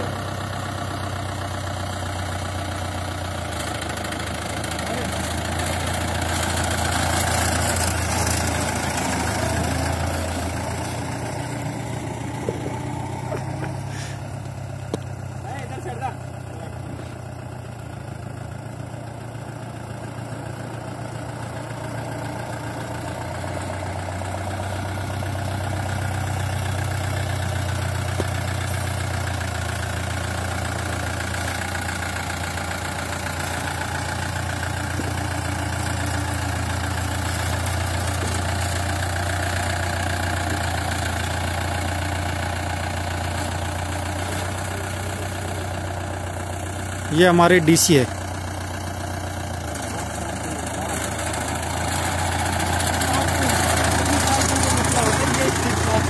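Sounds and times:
car engine running at low revs: 0.0 - 56.0.

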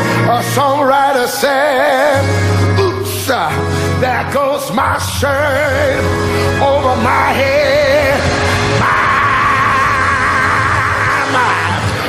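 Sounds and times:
accompanying music: 0.0 - 12.0
preacher singing a long note: 0.4 - 12.0.

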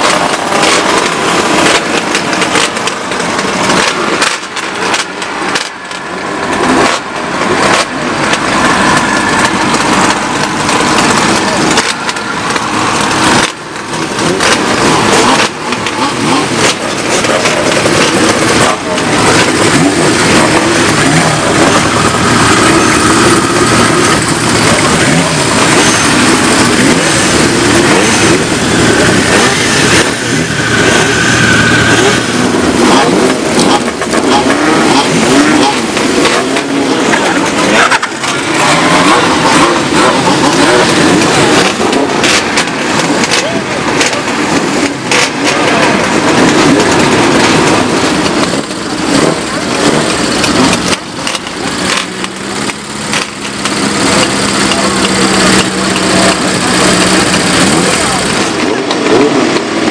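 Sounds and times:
crowd talking: 0.0 - 59.9
motorcycle engines revving: 0.0 - 59.9.

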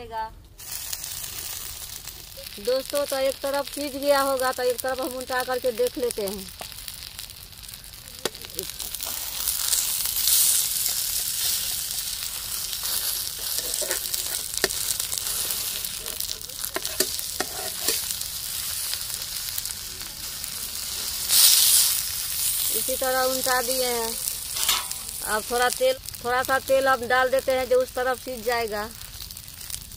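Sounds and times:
food sizzling in hot oil: 0.6 - 29.9
metal spatula scraping pan: 12.7 - 18.2, 24.5 - 25.2.

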